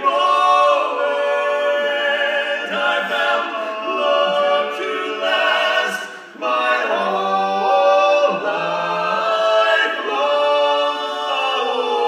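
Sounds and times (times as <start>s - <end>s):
male quartet singing in harmony: 0.0s - 12.0s.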